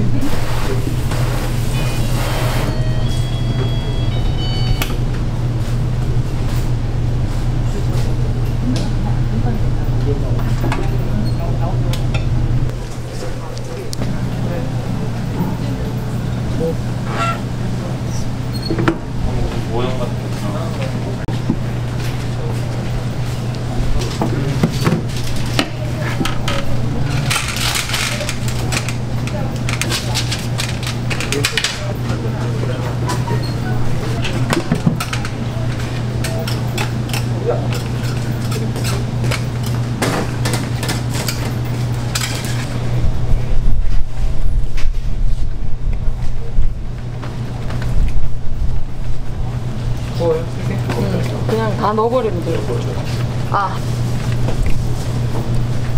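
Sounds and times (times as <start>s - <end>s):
kitchen hum: 0.0s - 55.9s
metal utensils clattering: 40.4s - 42.7s.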